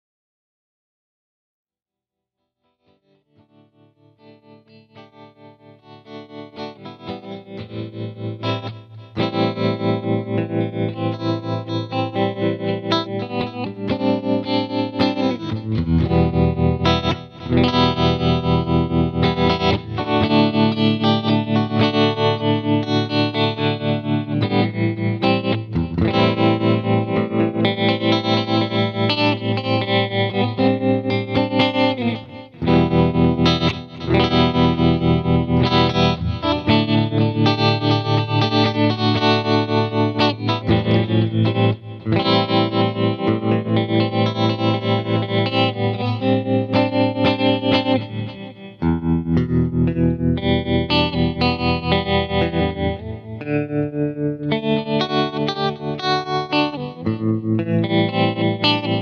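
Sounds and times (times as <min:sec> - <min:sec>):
distorted electric guitar tremolo: 0:11.1 - 0:53.4.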